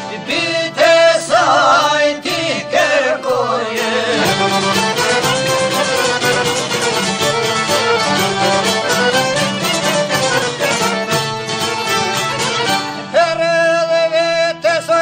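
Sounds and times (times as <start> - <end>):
instrumental folk music: 0.0 - 15.0.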